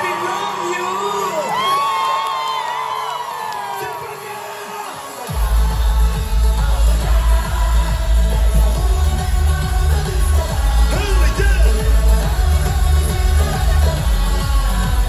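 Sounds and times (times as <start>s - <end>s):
crowd cheering and whooping: 0.0s - 15.0s
electronic dance beat with bass: 4.2s - 15.0s.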